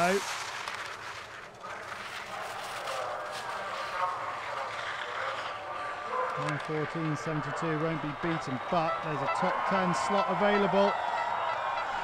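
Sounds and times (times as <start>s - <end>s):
skis scraping over snow: 0.0s - 10.9s
distant spectators cheering: 1.0s - 12.0s.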